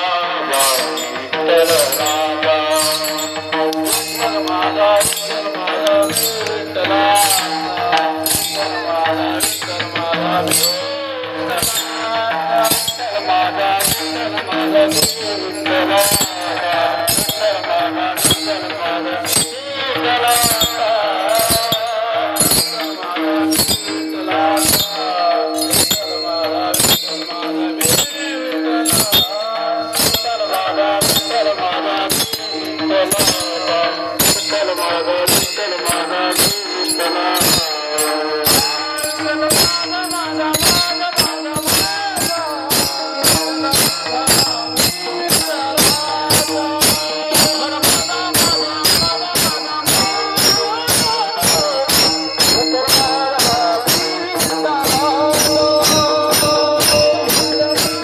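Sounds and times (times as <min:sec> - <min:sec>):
hand cymbals clashing: 0:00.0 - 0:58.0.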